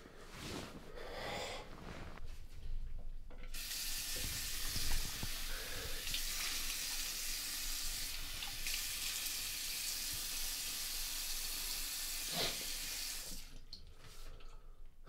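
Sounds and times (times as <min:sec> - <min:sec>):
tap water running into basin: 0:03.3 - 0:14.5.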